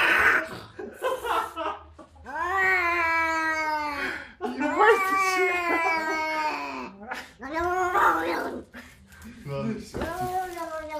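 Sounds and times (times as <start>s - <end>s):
cat yowling: 2.3s - 4.0s, 4.7s - 8.5s.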